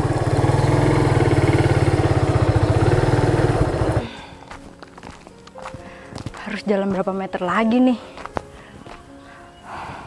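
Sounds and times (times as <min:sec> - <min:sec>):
motorcycle engine running: 0:00.0 - 0:04.3.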